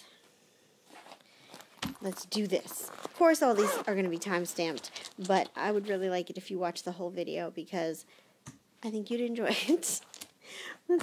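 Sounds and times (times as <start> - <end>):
cloth bag rustling: 0.9 - 6.2.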